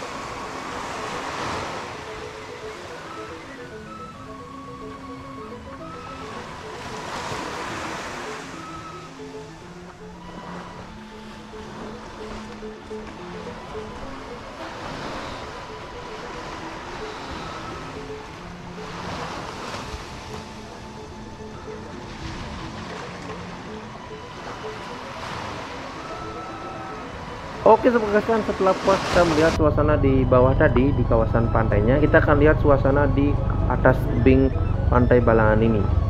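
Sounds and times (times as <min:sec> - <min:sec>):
ocean surf breaking on beach: 0:00.0 - 0:04.9, 0:05.8 - 0:29.6
background music simple melody: 0:00.0 - 0:36.0.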